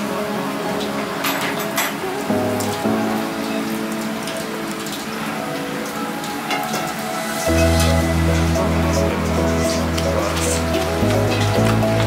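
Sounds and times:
background music: 0:00.0 - 0:12.0
crackling patter of mixing meat: 0:02.6 - 0:12.0.

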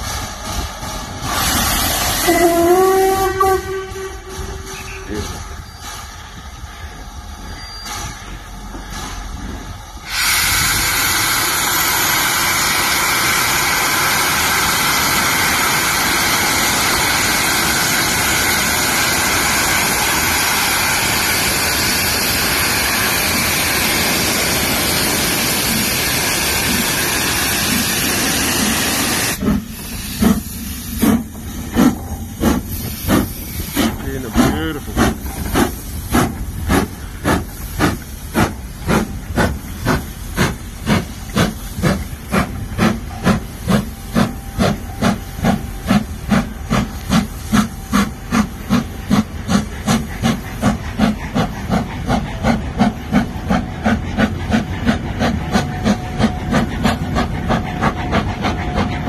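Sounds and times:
locomotive chimney exhaust beats: 0:00.0 - 0:10.0, 0:29.3 - 0:59.0
loud hiss of steam: 0:00.0 - 0:59.0.

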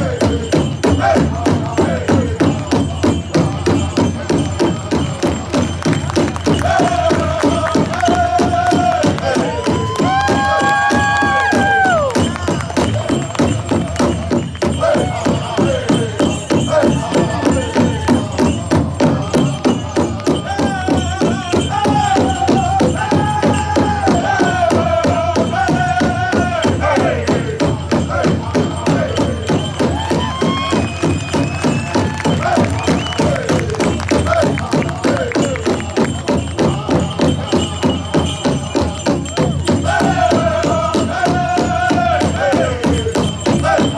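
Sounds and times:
fast beat on big drum: 0:00.0 - 0:43.9
group of voices singing: 0:00.0 - 0:43.9.

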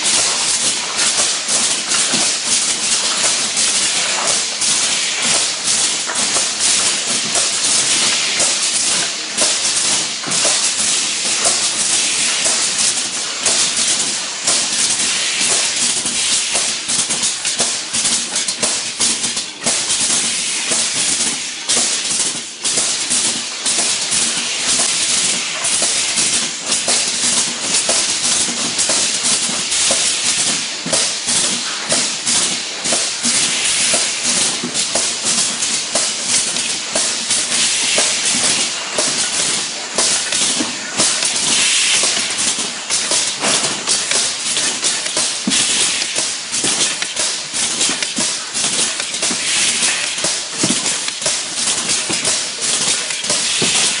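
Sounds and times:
compressed air hissing: 0:37.6 - 0:51.2.

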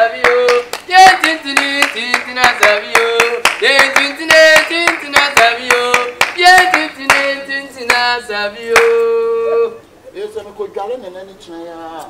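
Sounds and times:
hand clapping: 0:00.0 - 0:09.2
voices singing a chant: 0:00.0 - 0:09.9.

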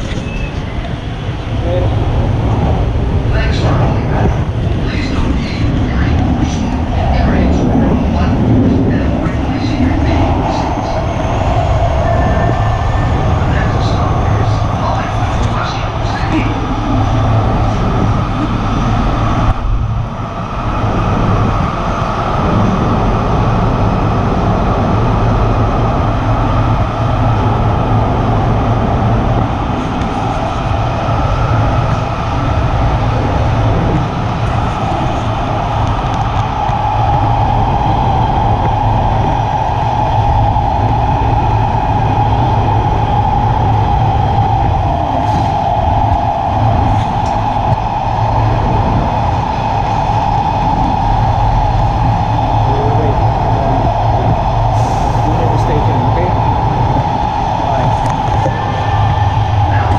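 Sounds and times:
steady train whine: 0:00.0 - 0:59.9
subway train rumbling in tunnel: 0:00.0 - 0:59.9.

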